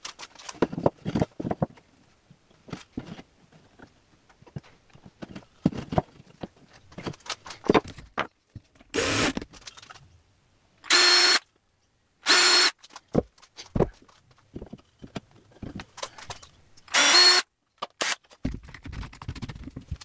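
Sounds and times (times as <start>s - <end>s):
cordless drill whining: 9.0s - 9.4s, 10.9s - 11.4s, 12.3s - 12.7s, 16.9s - 17.4s.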